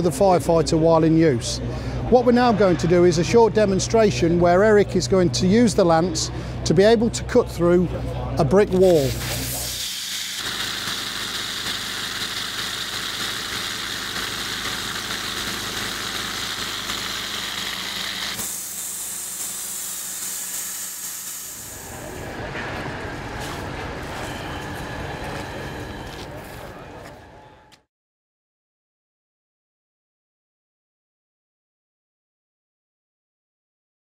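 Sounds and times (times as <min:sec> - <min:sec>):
steady low hum: 0:00.0 - 0:27.7
water jet hissing: 0:08.8 - 0:22.3.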